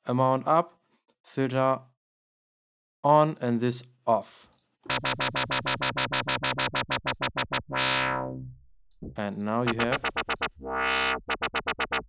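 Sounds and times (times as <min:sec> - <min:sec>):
synth wobble bass: 0:04.9 - 0:12.0.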